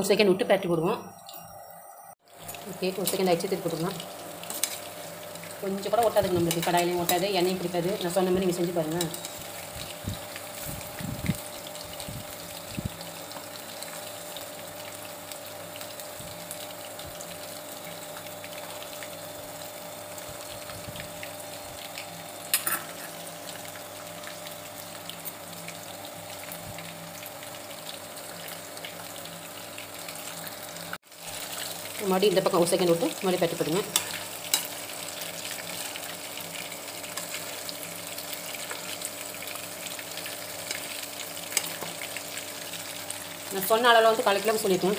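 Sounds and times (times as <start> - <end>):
deep-frying sizzle in oil: 0.0 - 44.9
sharp oil crackle: 2.2 - 44.9.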